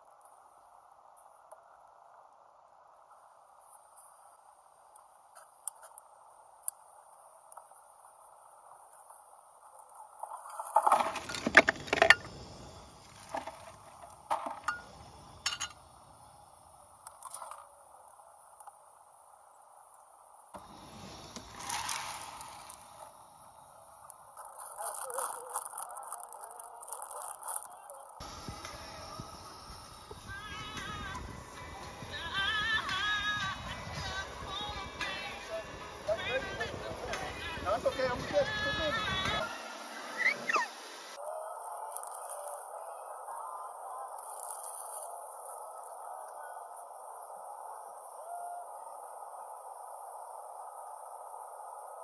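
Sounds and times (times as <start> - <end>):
faint steady hiss: 0.0 - 52.0
camp gear clinking and rustling: 9.8 - 15.9, 21.1 - 23.2, 24.3 - 28.6.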